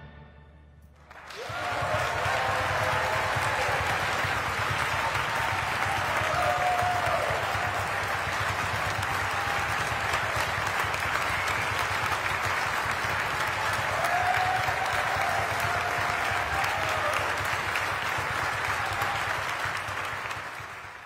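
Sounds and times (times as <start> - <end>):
audience applauding: 1.0 - 21.0.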